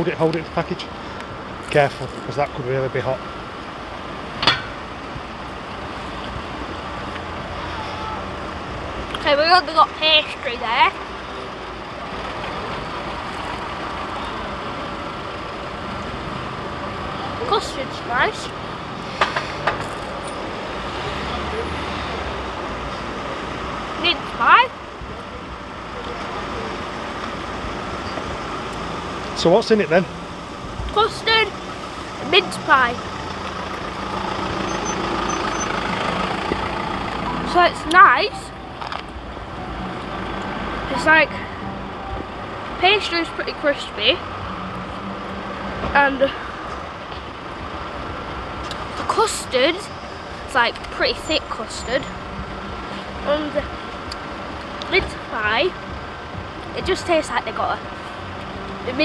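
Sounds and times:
traffic rumble: 0:00.0 - 0:59.0.

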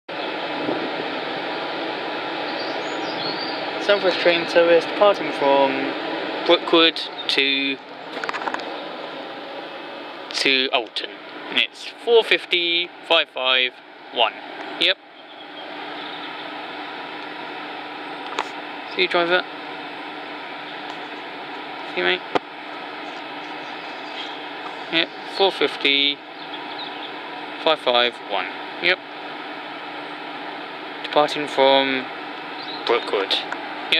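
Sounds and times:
train fans whirring hiss: 0:00.2 - 0:33.9.

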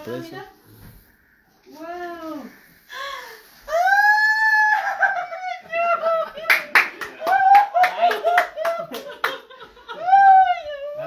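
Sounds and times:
hand claps: 0:06.5 - 0:09.5.

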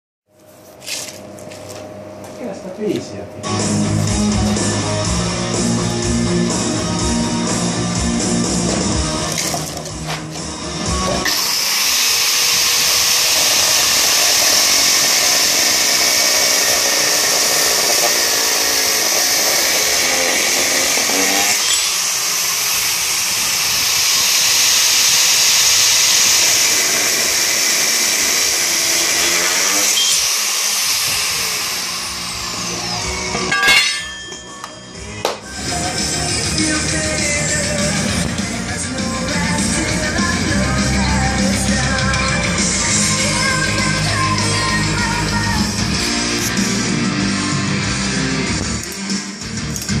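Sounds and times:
angle grinder cutting metal: 0:11.0 - 0:34.6, 0:39.0 - 0:47.5.

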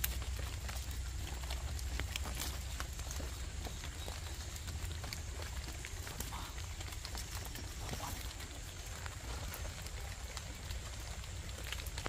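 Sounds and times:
leaves and stems rustling: 0:00.0 - 0:12.0.

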